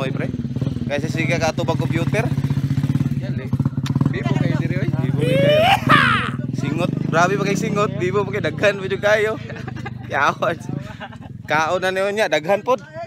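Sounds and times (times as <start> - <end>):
people talking: 4.3 - 6.5.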